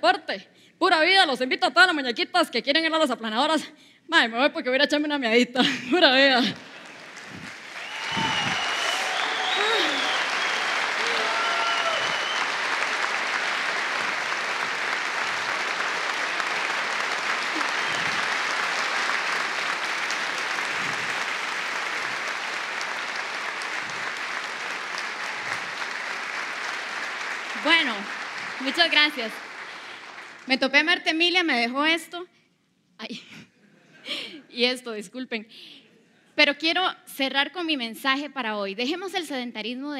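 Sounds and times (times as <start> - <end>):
audience applauding: 6.4 - 30.9
whoops and shouts: 7.7 - 12.7, 17.5 - 18.4.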